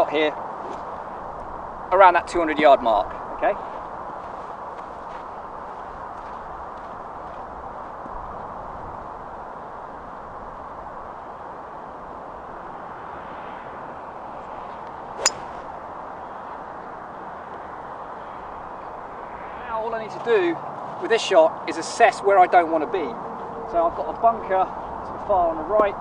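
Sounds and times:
golf club striking ball: 15.2s - 15.7s.

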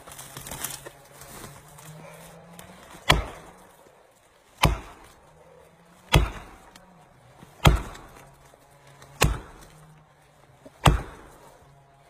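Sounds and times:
hammer blows on felling wedges: 0.0s - 11.8s.

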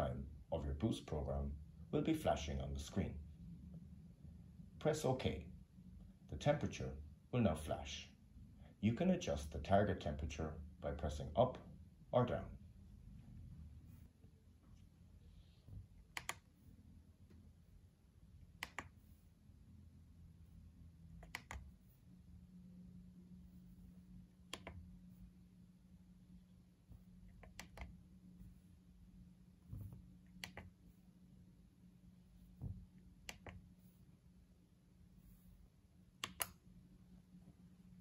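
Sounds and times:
thermostat button clicks: 21.2s - 21.6s, 36.2s - 36.6s.

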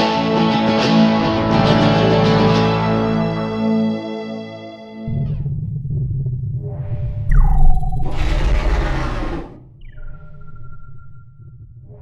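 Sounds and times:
falling electronic tone: 7.3s - 10.6s.

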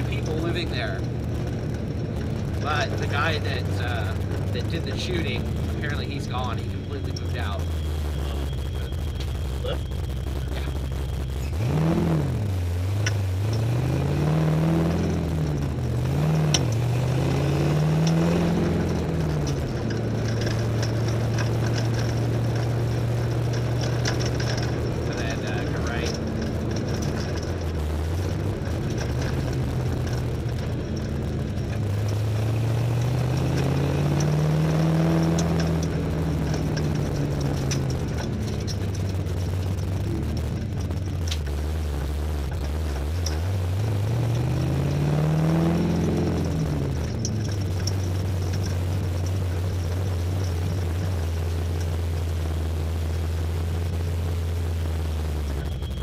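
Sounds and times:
race car engine accelerating: 0.0s - 56.0s.

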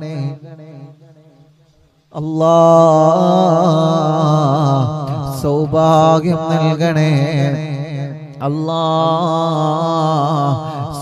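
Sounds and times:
person chanting melodically: 0.0s - 1.4s, 2.1s - 11.0s.

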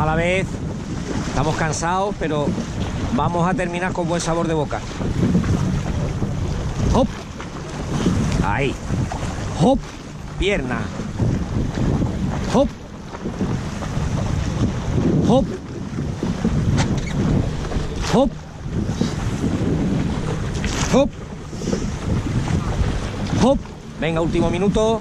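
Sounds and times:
oars dipping and splashing: 0.0s - 25.0s
water rushing along hull: 0.0s - 25.0s
wind buffeting microphone: 0.0s - 25.0s.

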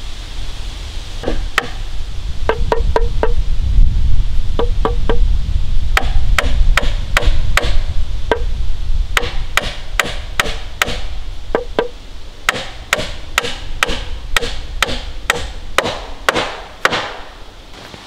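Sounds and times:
low rumble: 0.0s - 9.6s.

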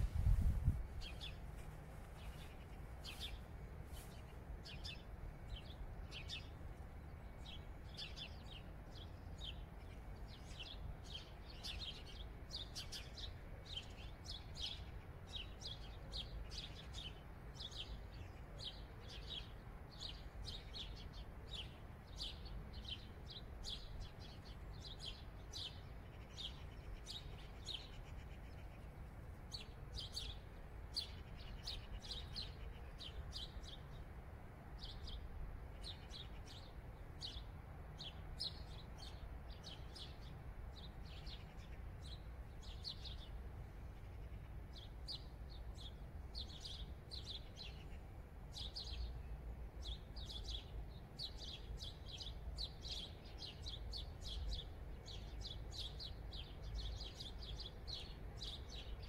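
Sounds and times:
faint low rumble: 0.0s - 11.5s
small birds chirping: 0.0s - 59.0s.

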